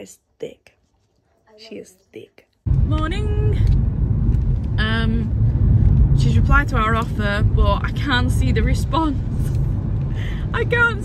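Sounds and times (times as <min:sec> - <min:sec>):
car engine and road rumble: 0:02.7 - 0:11.0.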